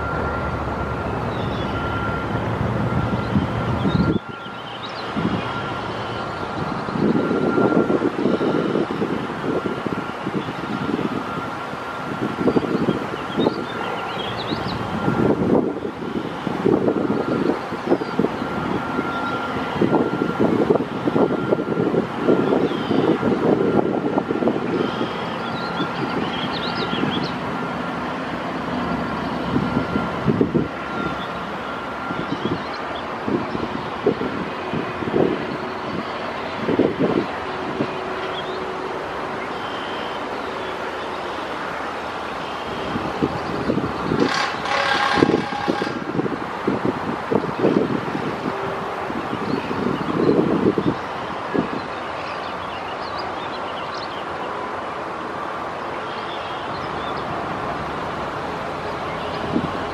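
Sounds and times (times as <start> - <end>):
road traffic rumble: 0.0 - 59.9
wind on microphone: 14.5 - 27.4, 29.4 - 31.2, 32.0 - 38.6, 42.7 - 52.0, 58.6 - 59.9.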